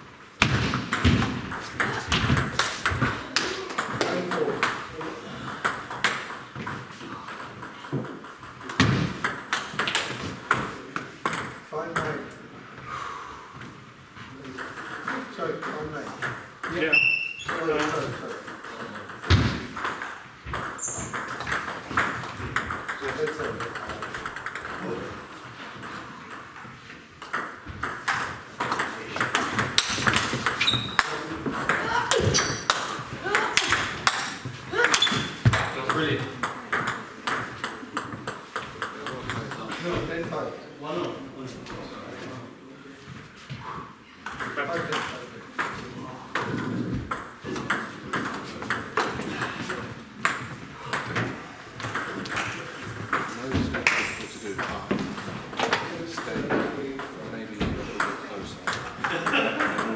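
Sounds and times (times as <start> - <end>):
table tennis ball pings: 25.8 - 39.8.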